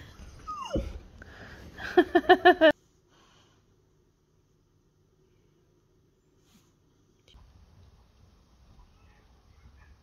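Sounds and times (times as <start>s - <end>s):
dog whining: 0.1s - 1.1s
person laughing: 1.8s - 2.7s.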